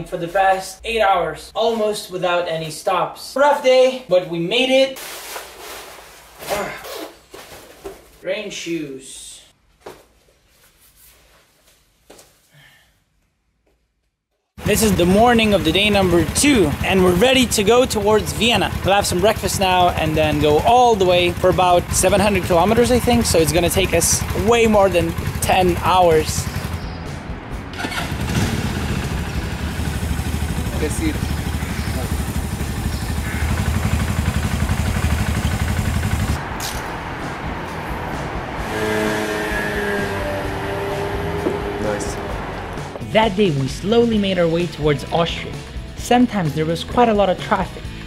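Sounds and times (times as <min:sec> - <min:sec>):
riding clothes rustling: 0:05.0 - 0:08.2
motorcycle engine idling: 0:14.6 - 0:36.4.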